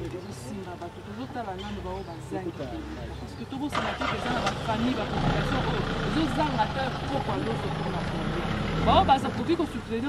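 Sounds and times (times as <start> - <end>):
people talking: 0.0 - 10.0
engine idling: 3.7 - 10.0.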